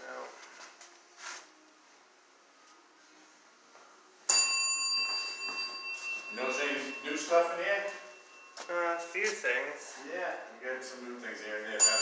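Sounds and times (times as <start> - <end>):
bell ringing: 4.3 - 9.3, 11.8 - 12.0.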